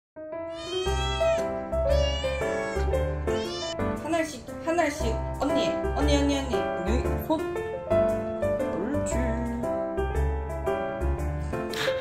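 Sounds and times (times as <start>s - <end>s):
cat meowing: 0.5s - 3.8s.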